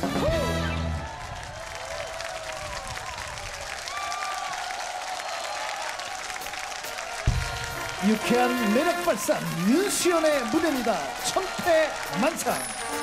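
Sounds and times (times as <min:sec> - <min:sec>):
audience applauding: 0:00.0 - 0:13.0
cheers and calls: 0:00.0 - 0:13.0.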